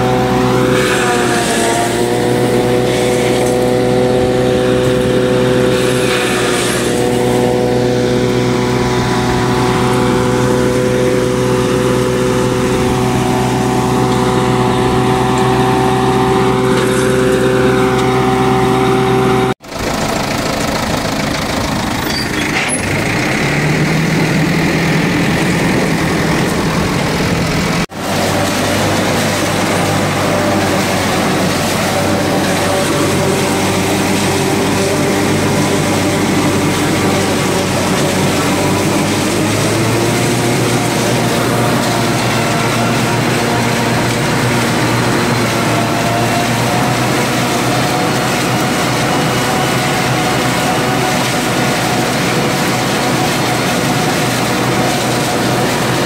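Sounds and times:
tractor engine and harvester drone: 0:00.0 - 0:56.0.

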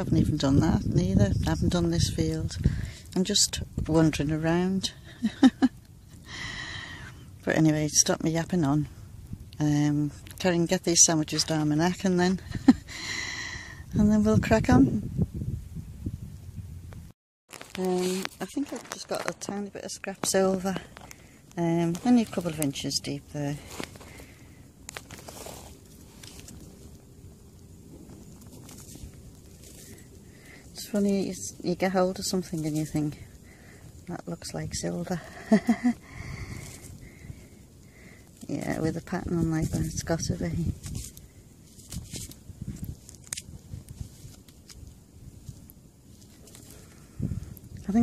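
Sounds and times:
hand rustling through soil: 0:17.5 - 0:33.2, 0:35.6 - 0:37.0, 0:38.4 - 0:48.0
low steady rumble: 0:17.8 - 0:48.0.

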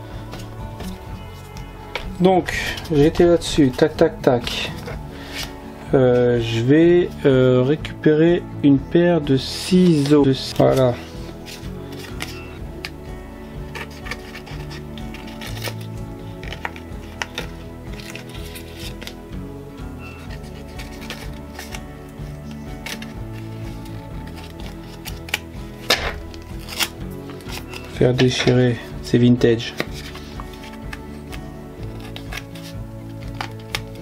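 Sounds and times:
soft background music: 0:00.0 - 0:34.0
taps and rustles of handling paper: 0:13.7 - 0:19.2, 0:20.2 - 0:21.8, 0:22.4 - 0:28.7, 0:29.4 - 0:34.0
paper tearing: 0:26.2 - 0:27.8.

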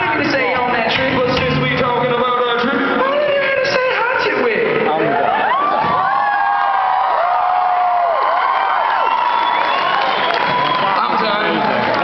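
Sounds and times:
concert audience cheering and screaming: 0:04.8 - 0:12.0.

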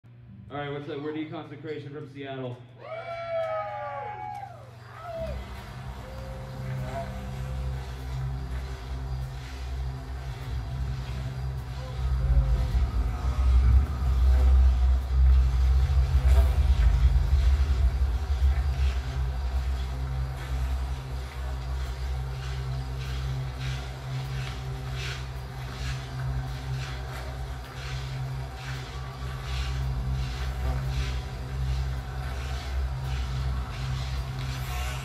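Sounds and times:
amp hum: 0:04.0 - 0:35.0
droning amplified band rumble: 0:04.5 - 0:35.0.

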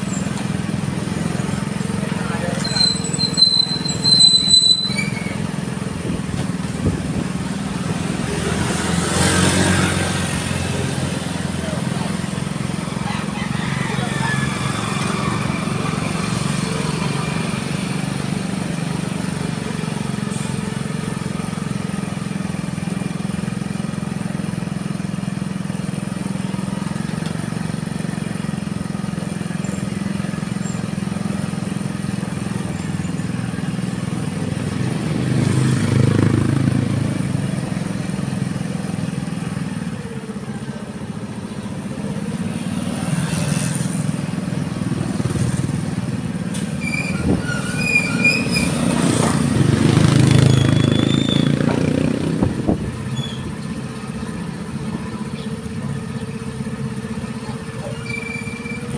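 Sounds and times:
low drone of riding along a road: 0:00.0 - 0:58.9.

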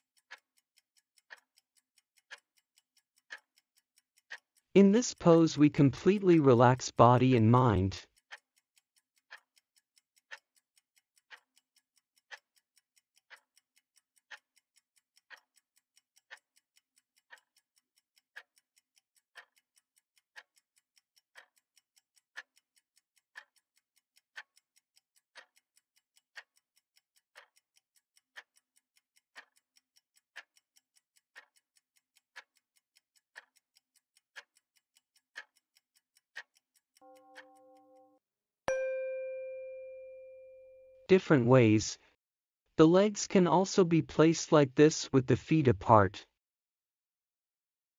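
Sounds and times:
countdown timer ticking: 0:01.2 - 0:08.6, 0:33.4 - 0:42.0, 0:42.8 - 0:46.2.

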